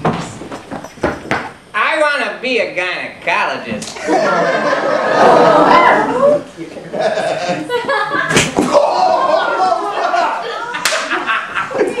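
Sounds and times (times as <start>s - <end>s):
whip strikes: 8.3s - 8.8s.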